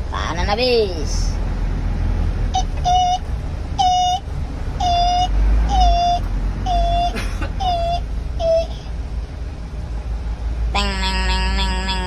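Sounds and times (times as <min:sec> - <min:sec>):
low engine rumble: 0:00.0 - 0:12.0
vehicle warning beeper: 0:02.5 - 0:08.7.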